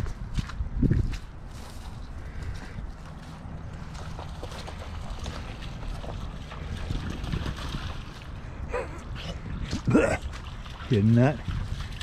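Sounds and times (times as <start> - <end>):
footsteps on wet grass: 0.0 - 8.4
wind buffeting microphone: 0.0 - 12.0.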